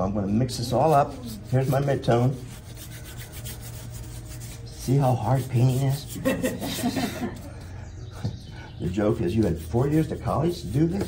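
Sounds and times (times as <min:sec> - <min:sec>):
brush scrubbing paint on paper: 0:00.5 - 0:07.5, 0:08.8 - 0:11.0.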